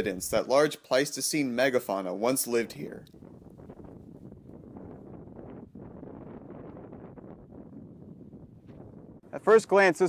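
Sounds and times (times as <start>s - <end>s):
wind buffeting microphone: 0.0s - 0.5s, 2.7s - 9.3s.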